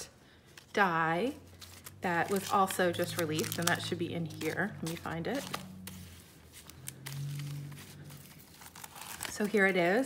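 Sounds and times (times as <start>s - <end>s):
packaged metal dies rustling: 0.6s - 9.9s.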